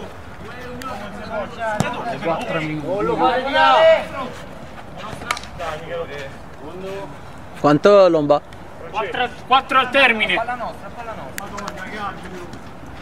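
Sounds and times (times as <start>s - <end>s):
men calling out: 0.0s - 4.6s
ball being kicked: 1.8s - 2.0s.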